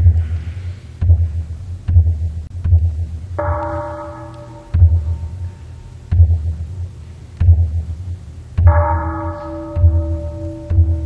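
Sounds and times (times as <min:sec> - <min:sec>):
large drum booming strokes: 0:00.0 - 0:11.0.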